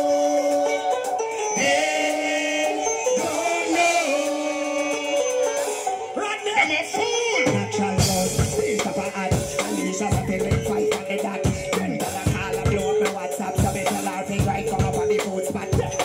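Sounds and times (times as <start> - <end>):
dancehall music with vocals: 0.0 - 16.0
heavy bass and beat: 7.0 - 16.0.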